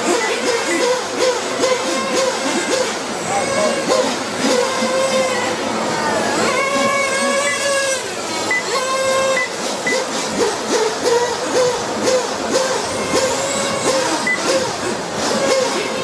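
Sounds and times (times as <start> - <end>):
rc motorcycle motors whining: 0.0 - 16.0.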